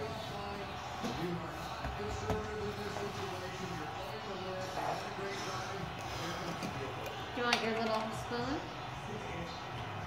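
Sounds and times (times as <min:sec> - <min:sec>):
kitchen background noise: 0:00.0 - 0:10.0.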